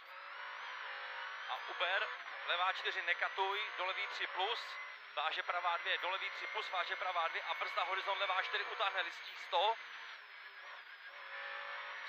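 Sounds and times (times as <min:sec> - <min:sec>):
car engine at speed: 0:00.0 - 0:12.0
road noise inside car: 0:00.0 - 0:12.0.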